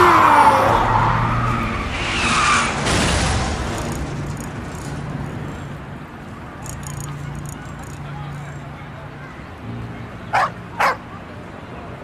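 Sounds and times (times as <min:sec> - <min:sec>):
car tyres squealing in a skid: 0:00.0 - 0:03.3.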